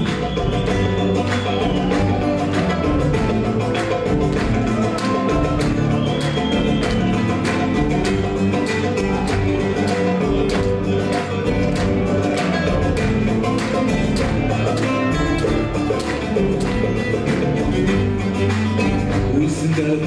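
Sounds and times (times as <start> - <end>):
drums: 0.0 - 20.0
electric guitar: 0.0 - 20.0
plucked bass lute: 0.0 - 20.0.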